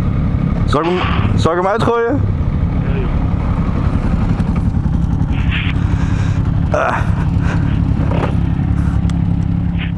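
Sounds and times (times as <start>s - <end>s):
motorcycle engine idling: 0.0s - 9.9s.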